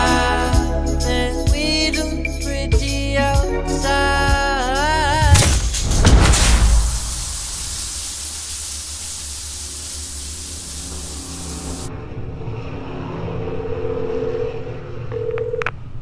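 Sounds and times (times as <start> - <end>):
shower water spray hissing: 5.2 - 11.9.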